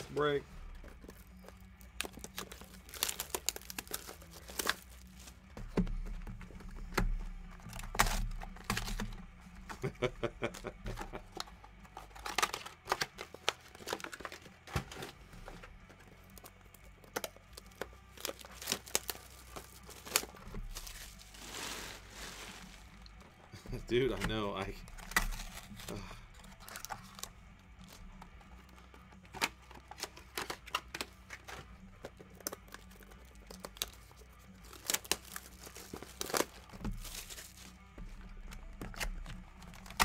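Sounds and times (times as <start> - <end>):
plastic wrap crinkling and tearing: 0.0 - 5.5, 7.5 - 15.2, 15.9 - 40.0.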